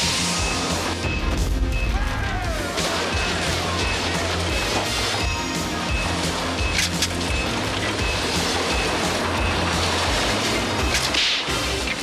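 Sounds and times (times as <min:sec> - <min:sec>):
sharp hissing sound effect: 0:00.0 - 0:00.9
cartoon background music: 0:00.0 - 0:12.0.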